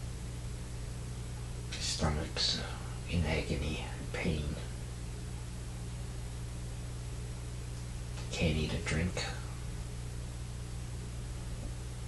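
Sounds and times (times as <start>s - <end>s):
steady low hum: 0.0s - 12.0s
person whispering: 1.7s - 4.7s, 8.3s - 9.6s.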